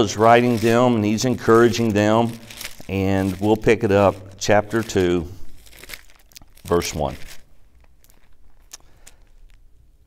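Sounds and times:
pages being turned: 0.0s - 9.6s
pages rustling: 0.0s - 9.6s.

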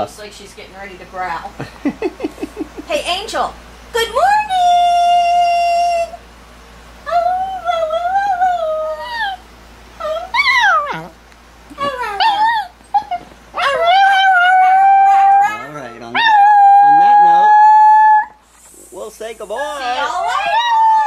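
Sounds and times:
small dog howling: 10.0s - 11.2s, 11.8s - 18.4s, 19.9s - 21.0s.

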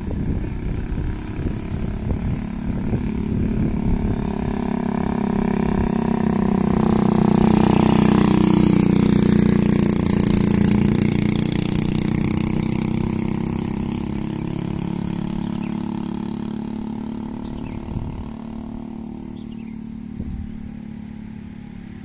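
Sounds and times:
motorcycle passing by: 0.0s - 22.0s.

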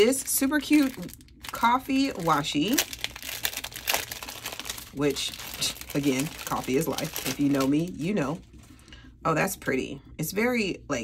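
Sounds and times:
cellophane sleeve crinkling: 0.0s - 8.8s.

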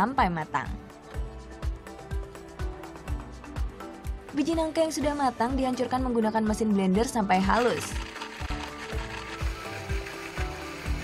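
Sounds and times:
background music with steady beat: 0.0s - 11.0s
electric blender grinding: 7.4s - 11.0s.

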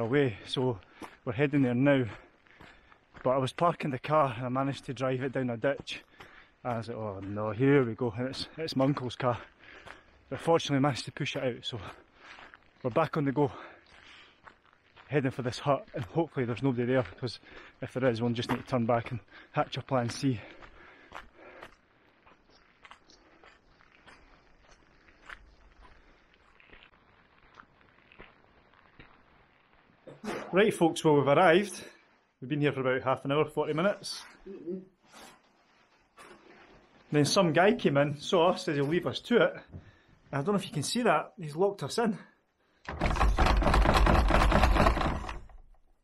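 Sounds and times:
footsteps on dirt track: 0.0s - 30.1s.

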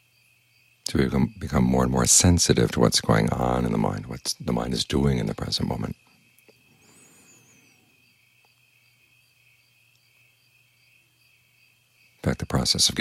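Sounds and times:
faint insect chorus: 0.0s - 13.0s
high twittering bird chirp: 0.1s - 13.0s.

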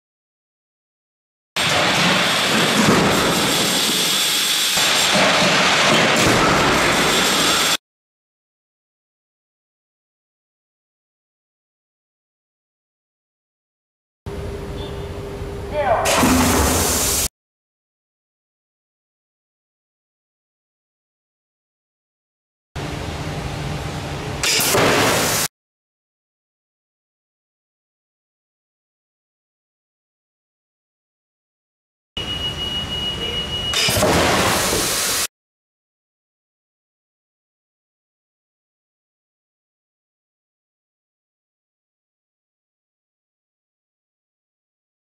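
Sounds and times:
low machine hum: 14.3s - 17.1s, 22.8s - 24.4s.

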